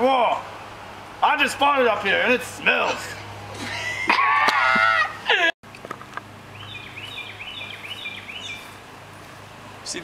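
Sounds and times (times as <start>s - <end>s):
men laughing loudly: 3.5s - 5.6s
small bird chirping: 6.5s - 8.8s.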